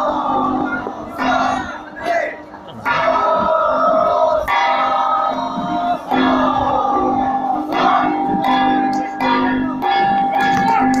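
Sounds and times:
metal gongs ringing: 0:00.0 - 0:11.0.

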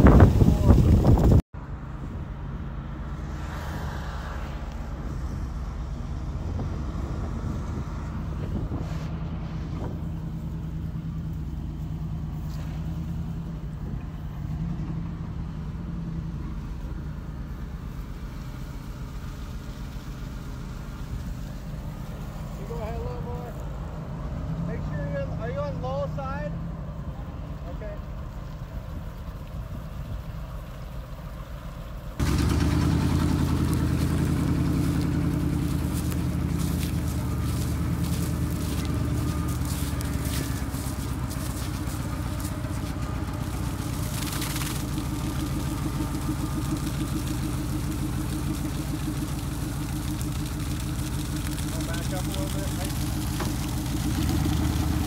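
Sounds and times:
engine running: 0:00.0 - 0:55.0.

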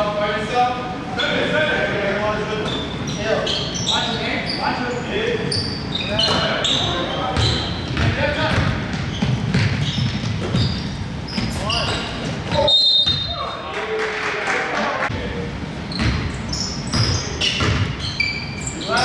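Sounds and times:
sneakers squeaking on court: 0:02.6 - 0:13.6, 0:15.8 - 0:19.0
basketball bouncing: 0:07.4 - 0:13.3, 0:16.0 - 0:18.0
referee's whistle: 0:11.7 - 0:13.5.

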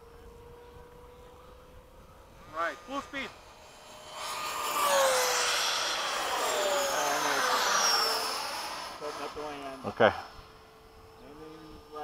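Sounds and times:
jet fan whine passing: 0:00.0 - 0:12.0.

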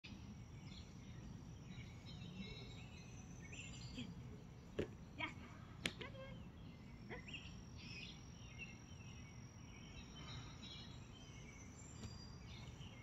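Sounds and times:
songbirds chirping: 0:00.1 - 0:13.0.

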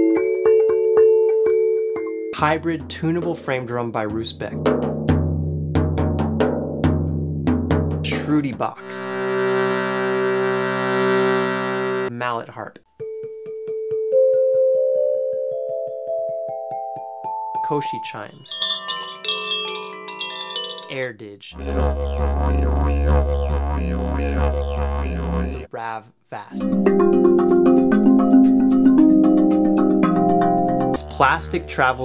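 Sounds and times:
wind chime ringing: 0:17.8 - 0:21.3.

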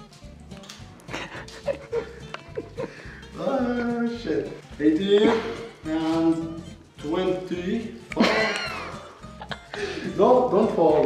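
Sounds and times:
quiet guitar music: 0:00.0 - 0:11.0
man laughing: 0:01.1 - 0:03.2, 0:05.1 - 0:05.8, 0:08.1 - 0:10.2.

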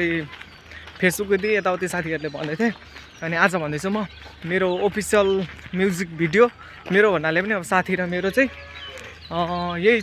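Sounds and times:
man's voice: 0:00.0 - 0:10.0.

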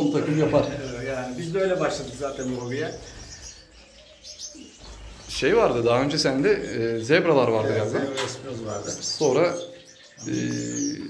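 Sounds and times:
finches chirping: 0:00.0 - 0:11.0.

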